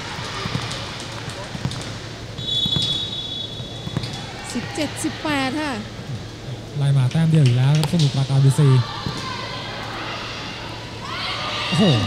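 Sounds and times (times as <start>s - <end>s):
background noise: 0.0s - 12.0s
referee's whistle long note: 2.4s - 3.8s.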